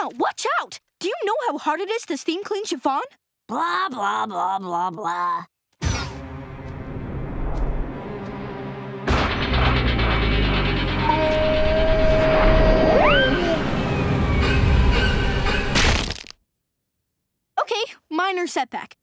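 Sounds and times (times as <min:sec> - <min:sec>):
music: 0:05.8 - 0:11.2
rumbling clattering pile-up: 0:09.1 - 0:11.1
cartoon crash: 0:09.1 - 0:16.3
upward swooping tone: 0:10.0 - 0:14.9.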